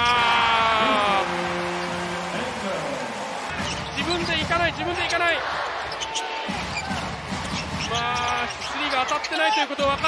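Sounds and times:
arena music: 0.0 - 5.8
crowd noise: 0.0 - 10.0.

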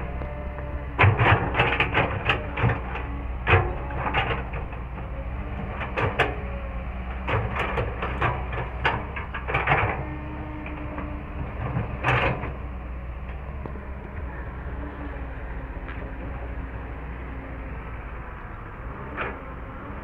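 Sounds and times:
excavator diesel engine humming: 0.0 - 20.0.

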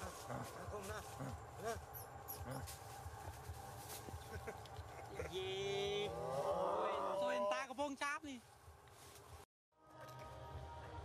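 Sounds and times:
rustling in dry leaves: 0.0 - 6.8.

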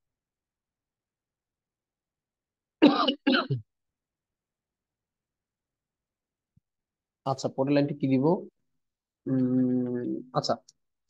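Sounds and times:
person clearing throat: 2.8 - 3.6.

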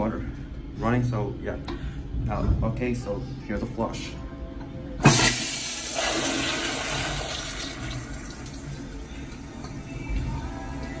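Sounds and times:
toilet flushing: 5.0 - 9.5.

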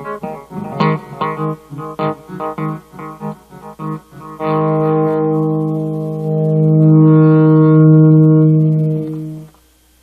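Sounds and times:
electric guitar low note ringing: 0.0 - 9.6.

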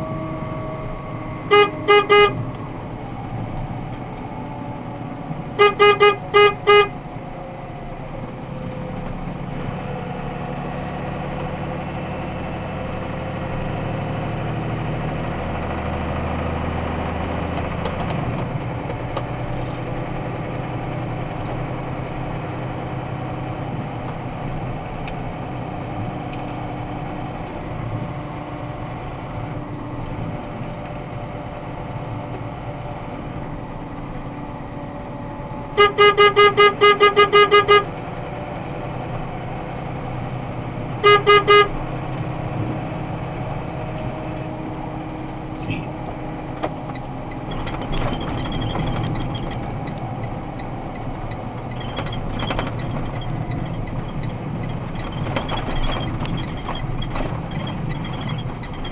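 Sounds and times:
truck engine drone from cab: 0.0 - 58.9
vehicle horn short beeps: 1.4 - 2.5, 5.6 - 7.0, 35.7 - 37.9, 41.0 - 41.8.

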